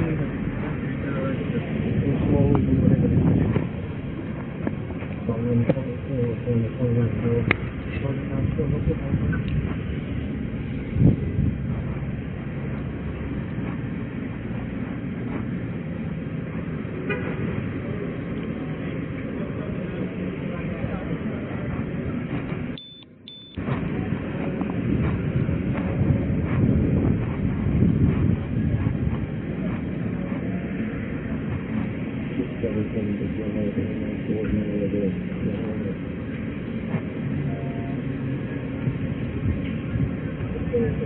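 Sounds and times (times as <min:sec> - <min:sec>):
microphone rumble from walking: 0:00.0 - 0:41.0
street traffic noise: 0:00.0 - 0:41.0.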